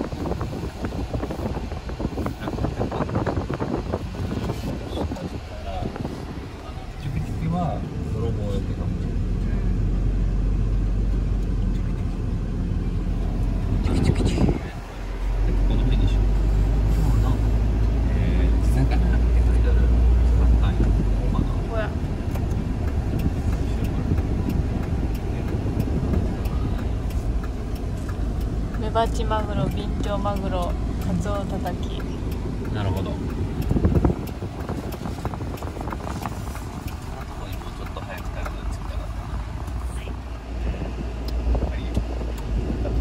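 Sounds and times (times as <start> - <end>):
road noise: 0.0 - 43.0
van engine: 0.0 - 43.0.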